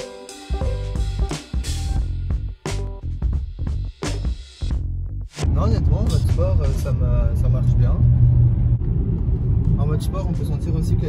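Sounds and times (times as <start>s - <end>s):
car engine rumble: 5.5s - 11.0s
road noise inside car: 5.9s - 11.0s.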